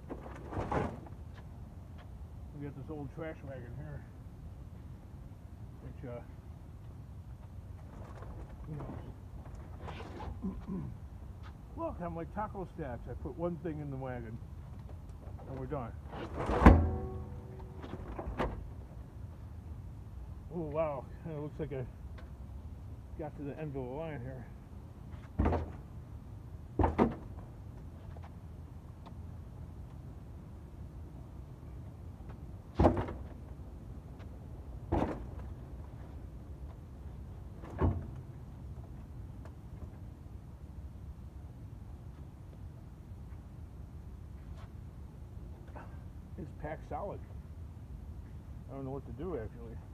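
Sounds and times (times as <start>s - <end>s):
metal tank thunk ringing: 16.5s - 17.8s.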